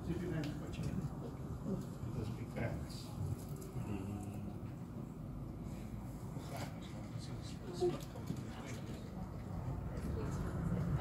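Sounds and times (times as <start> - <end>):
low steady rumble: 8.9 - 11.0.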